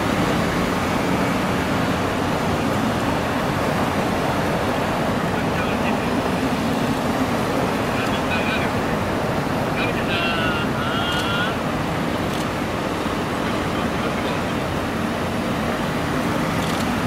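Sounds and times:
car engines passing: 0.0 - 17.0
tyres on asphalt: 0.0 - 17.0
faint voice calling out: 9.8 - 11.6.

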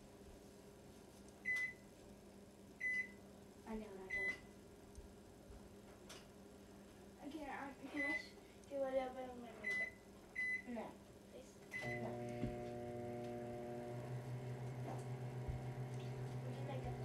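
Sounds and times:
microwave keypad beeping: 4.1 - 4.4, 11.8 - 12.4
microwave running hum: 9.6 - 17.0.

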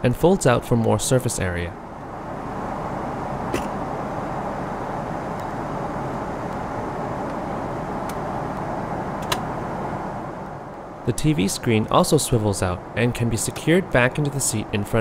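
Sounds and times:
airplane cabin rushing noise: 1.8 - 15.0.

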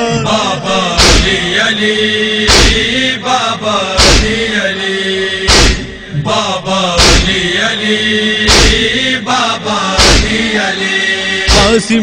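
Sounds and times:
steady drone: 0.0 - 12.0
loud sharp beat: 1.0 - 1.6, 2.5 - 3.0, 4.0 - 4.5, 5.5 - 6.0, 7.0 - 7.6, 8.5 - 9.0, 10.0 - 10.6, 11.5 - 11.9
man chanting a lament: 11.5 - 12.0.

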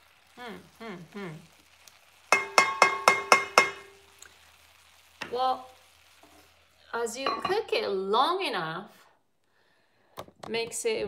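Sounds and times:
wooden spatula tapping pot rim: 2.3 - 4.0.

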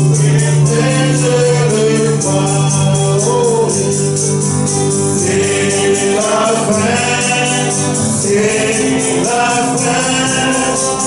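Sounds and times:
group singing gospel: 0.0 - 11.0
man singing into a microphone: 0.0 - 11.0
shaken percussion beat: 0.0 - 11.0.

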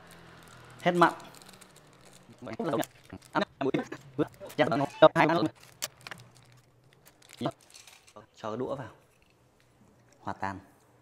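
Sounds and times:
man speaking: 2.3 - 5.5
faint handling noise: 5.4 - 8.2.

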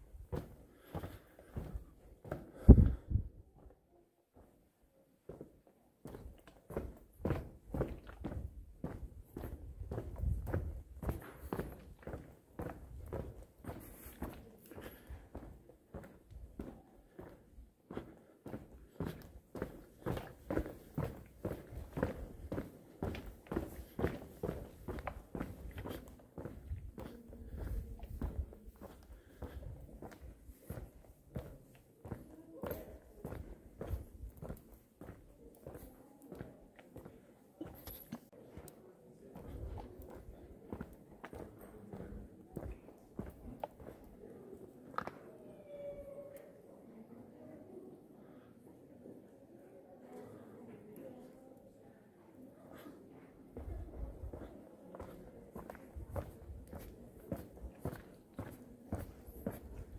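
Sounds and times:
footsteps walking: 0.0 - 3.8, 5.3 - 44.2, 53.6 - 59.9.

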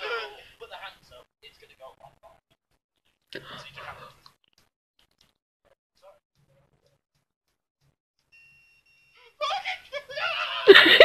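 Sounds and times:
loud voices laughing: 9.4 - 11.0.

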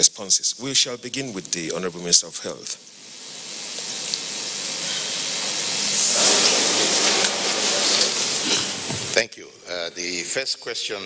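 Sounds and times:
electrical hiss: 0.0 - 11.0.

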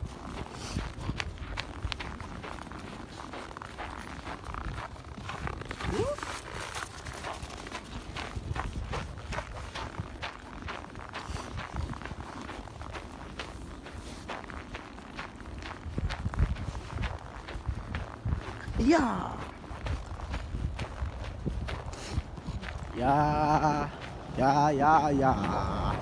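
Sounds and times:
footsteps crunching through snow: 0.0 - 26.0.

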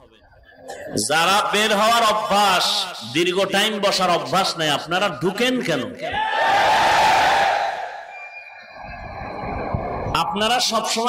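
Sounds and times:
voice through loudspeaker with echo: 0.0 - 6.1, 10.2 - 11.0.

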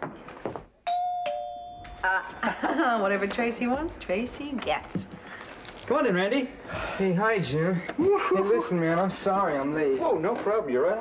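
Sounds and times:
two-note doorbell chime: 0.8 - 2.1.

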